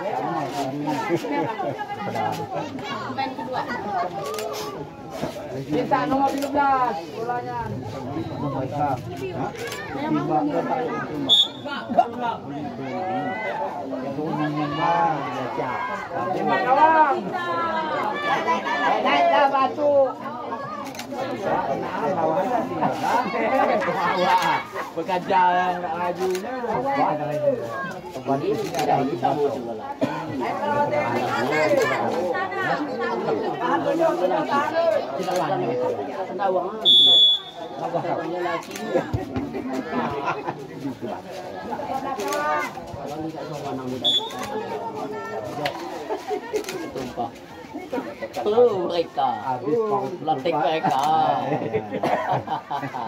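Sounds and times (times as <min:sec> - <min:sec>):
people chatting: 0:00.0 - 0:53.0
people talking over one another: 0:00.0 - 0:53.0.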